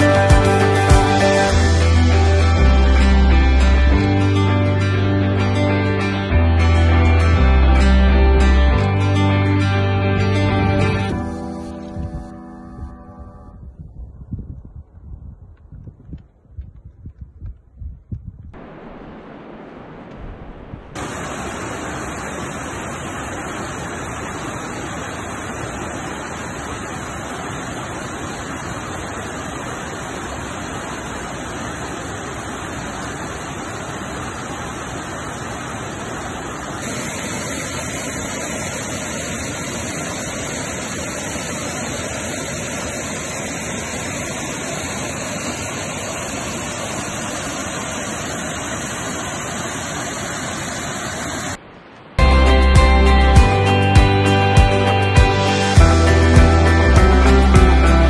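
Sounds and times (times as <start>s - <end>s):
stream rushing over boulders: 0.0s - 9.0s, 18.6s - 58.0s.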